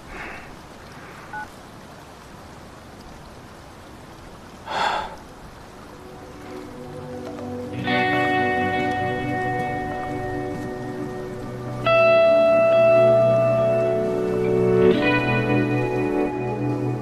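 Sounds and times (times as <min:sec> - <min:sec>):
steady background hiss: 0:00.0 - 0:17.0
soft music with held tones: 0:05.5 - 0:17.0.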